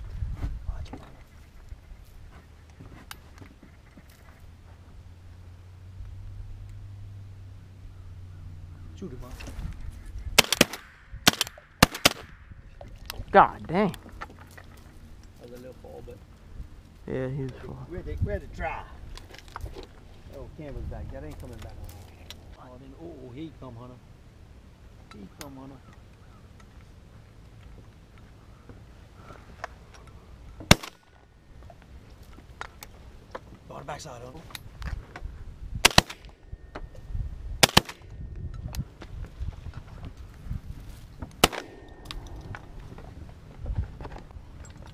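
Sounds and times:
shotgun shots: 10.4s - 12.5s, 30.7s - 31.0s, 35.8s - 36.3s, 37.6s - 38.1s, 41.4s - 41.9s.

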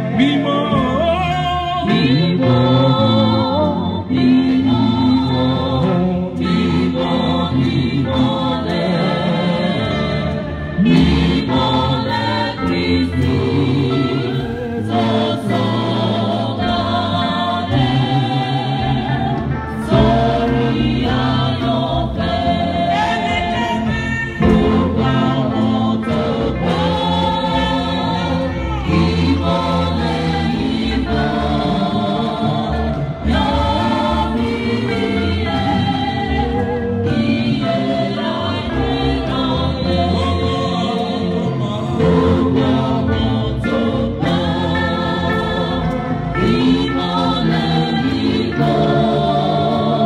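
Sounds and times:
choir singing gospel song: 0.0s - 50.0s.

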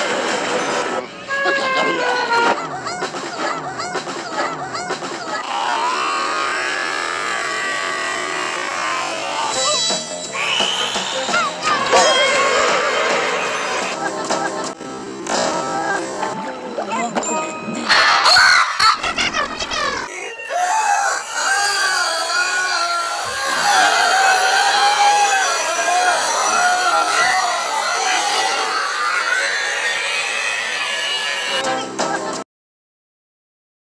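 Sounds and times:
cartoon character screaming: 4.7s - 14.0s, 18.1s - 31.6s
cartoon saw blade whine: 5.4s - 14.0s.

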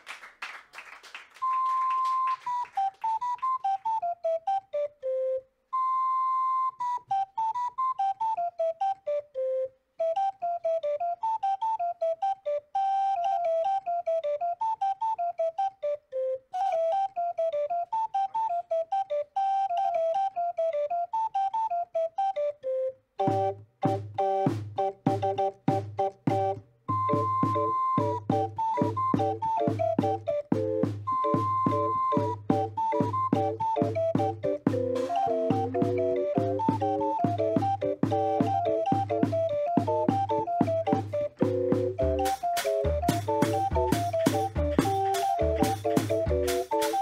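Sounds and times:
pipe organ melody: 1.5s - 47.0s.

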